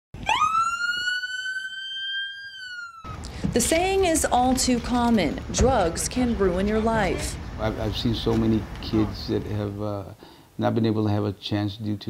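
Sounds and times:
police siren wail: 0.2s - 3.2s.

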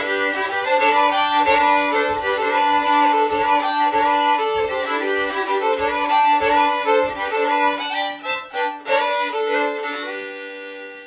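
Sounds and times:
low rhythmic thud: 0.0s - 10.9s
fiddles playing a tune: 0.0s - 11.0s.

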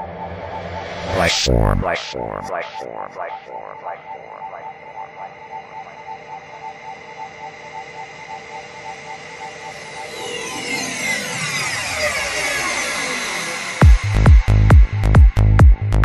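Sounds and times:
pulsing synth tones: 1.6s - 7.2s.

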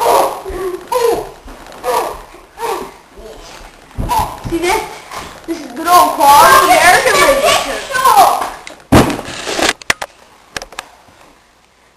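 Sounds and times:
child talking: 0.4s - 8.6s
loud thump: 8.9s - 9.5s.

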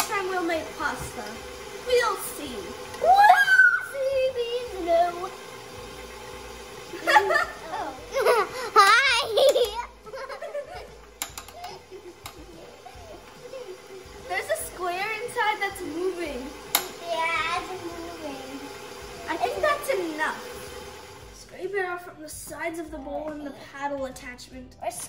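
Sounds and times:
girls singing and vocalising: 0.0s - 6.1s, 6.7s - 25.0s
steady hum: 0.0s - 22.6s.

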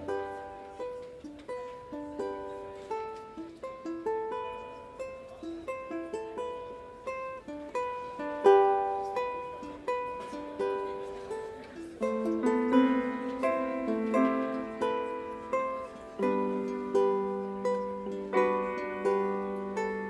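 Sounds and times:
ukulele picking: 0.0s - 20.0s.

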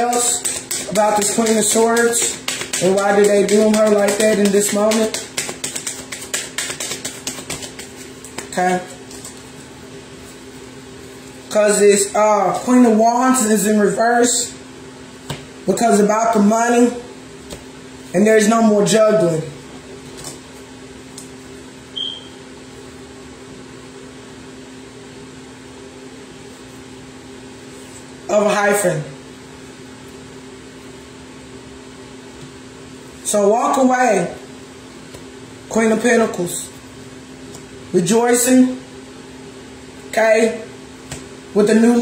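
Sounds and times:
cards being shuffled: 0.0s - 9.6s, 20.0s - 20.4s
appliance humming: 0.0s - 42.0s
short high beep: 22.0s - 22.4s.

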